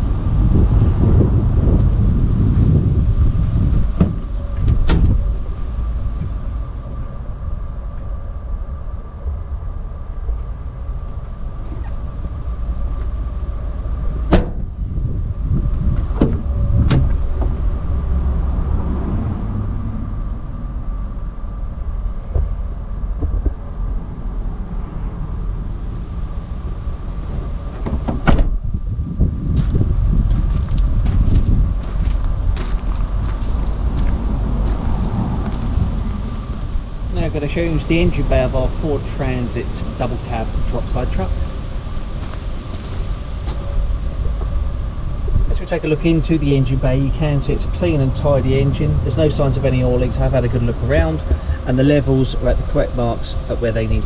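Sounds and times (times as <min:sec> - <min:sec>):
wind rumble on microphone: 0:00.0 - 0:54.0
van door opening and shutting: 0:03.7 - 0:05.5, 0:14.0 - 0:14.9, 0:15.8 - 0:17.8, 0:27.2 - 0:28.8.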